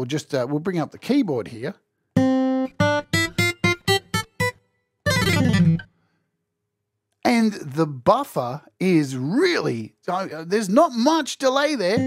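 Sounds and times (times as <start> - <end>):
acoustic guitar notes plucked: 2.2 - 6.0.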